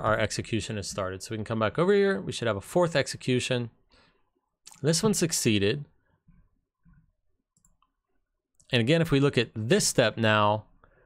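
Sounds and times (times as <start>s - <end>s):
faint computer mouse clicks: 7.6s - 8.0s.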